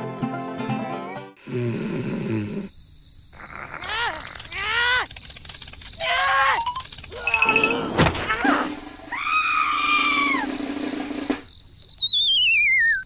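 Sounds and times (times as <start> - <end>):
warbling descending whistle: 11.6 - 13.0.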